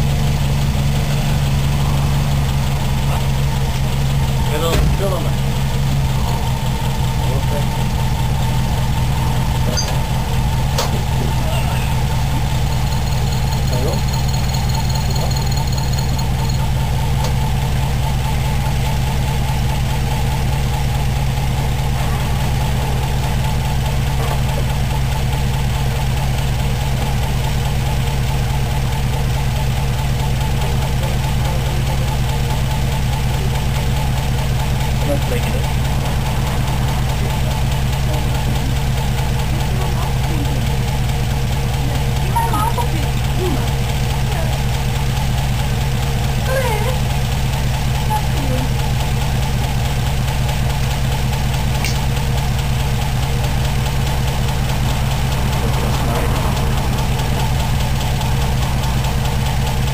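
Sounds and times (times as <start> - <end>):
car engine idling: 0.0 - 59.9.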